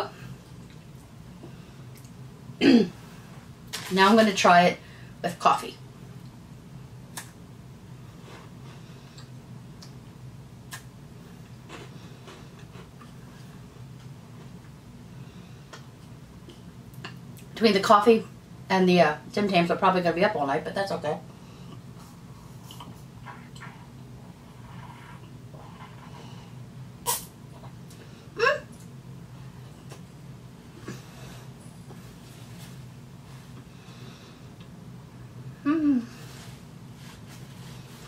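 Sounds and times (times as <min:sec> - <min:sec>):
steady low hum: 0:00.0 - 0:38.0
sharp slurp: 0:27.0 - 0:27.3.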